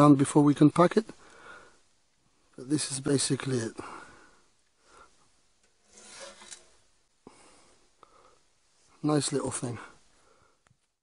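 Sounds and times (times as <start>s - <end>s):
stove door scraping shut: 5.8s - 6.7s.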